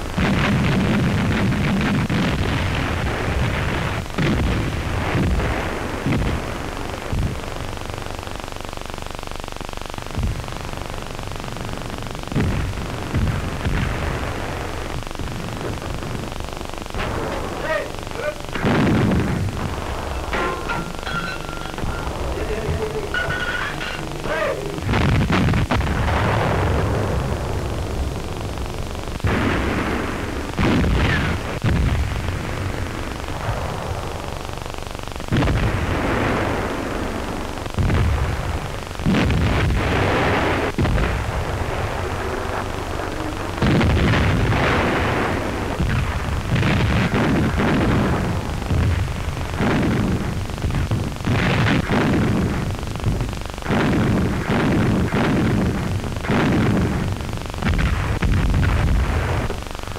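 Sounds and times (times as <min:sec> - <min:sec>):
artillery explosions: 0:00.0 - 0:59.9
old film soundtrack hiss: 0:00.0 - 0:59.9.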